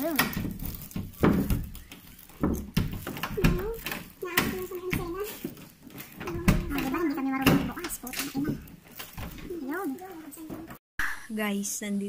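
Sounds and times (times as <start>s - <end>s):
woman talking: 9.5s - 12.0s.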